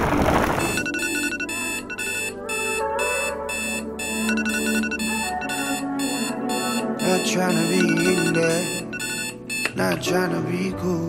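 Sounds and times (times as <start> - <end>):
smartphone alarm ringing: 0.5 - 10.0
soft music: 0.6 - 11.0.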